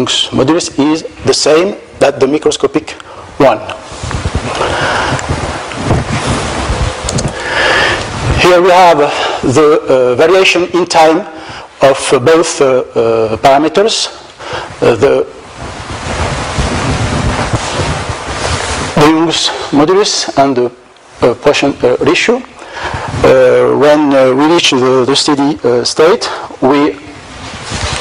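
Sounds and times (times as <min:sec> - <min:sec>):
man speaking: 0:00.0 - 0:03.9, 0:08.4 - 0:15.4, 0:19.0 - 0:22.6, 0:23.2 - 0:27.2
wind noise on microphone: 0:00.0 - 0:28.0
low rumbles and thuds: 0:04.0 - 0:07.4, 0:15.5 - 0:19.0.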